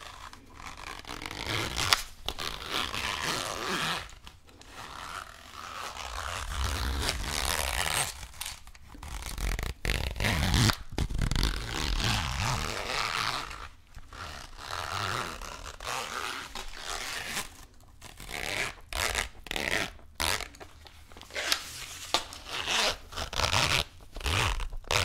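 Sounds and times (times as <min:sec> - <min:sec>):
zipper opening and closing: 0:00.0 - 0:25.0.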